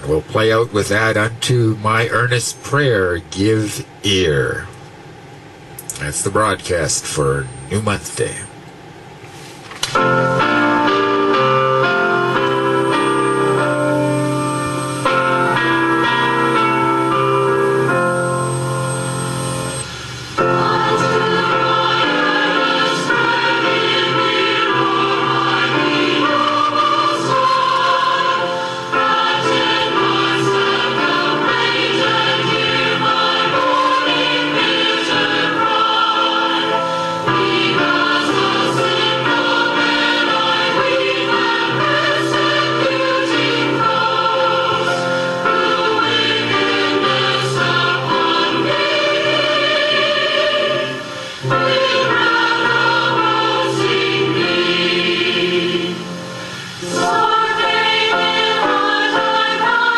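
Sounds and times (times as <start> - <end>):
choir singing a hymn: 10.0 - 59.9.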